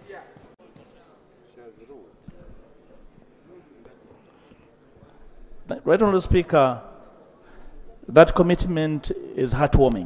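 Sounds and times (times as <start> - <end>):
faint voices speaking: 0.0 - 10.0.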